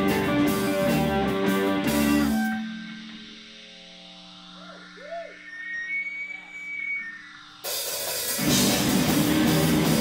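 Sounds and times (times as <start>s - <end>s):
electric guitar bent notes: 0.0s - 10.0s
low amp hum: 0.0s - 10.0s
thin high whine: 0.5s - 10.0s.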